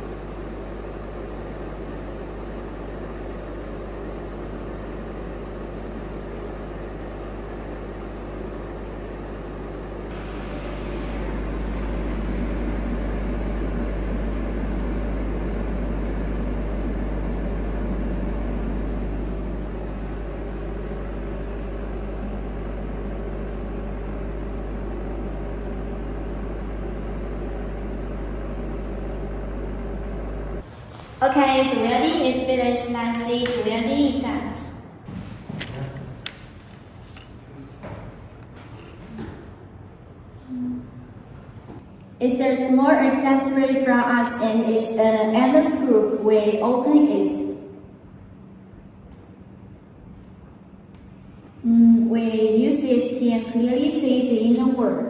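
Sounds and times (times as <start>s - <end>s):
welding machine hum and hiss: 0.0s - 34.1s, 35.1s - 37.7s.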